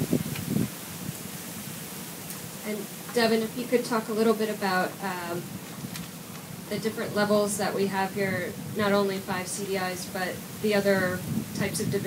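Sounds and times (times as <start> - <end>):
open-air background hiss: 0.0 - 12.0.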